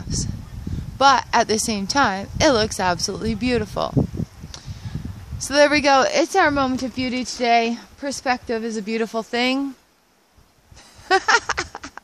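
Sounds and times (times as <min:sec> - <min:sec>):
woman laughing: 0:10.8 - 0:12.0.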